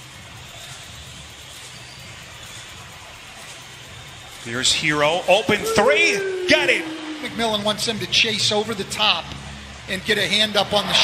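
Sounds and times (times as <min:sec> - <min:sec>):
arena crowd murmur: 0:05.3 - 0:08.2.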